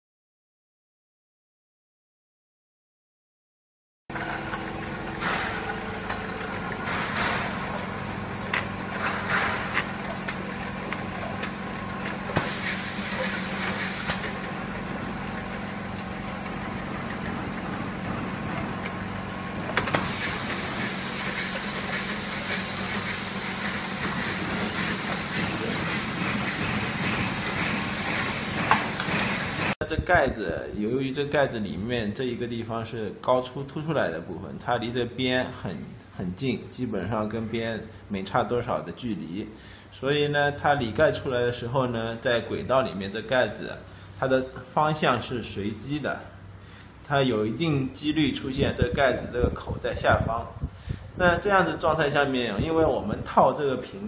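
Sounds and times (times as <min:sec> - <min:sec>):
capping machine hum: 0:04.1 - 0:29.8
loud hiss: 0:12.4 - 0:14.4, 0:19.9 - 0:29.8.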